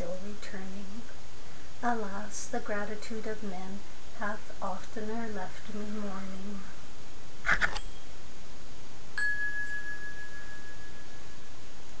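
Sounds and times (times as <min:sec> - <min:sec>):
background hiss: 0:00.0 - 0:12.0
bell-like ding: 0:09.2 - 0:11.4.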